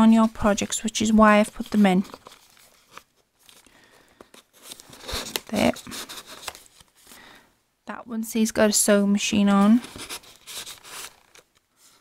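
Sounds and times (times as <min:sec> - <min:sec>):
paper rustling: 0:00.0 - 0:07.2, 0:09.6 - 0:12.0.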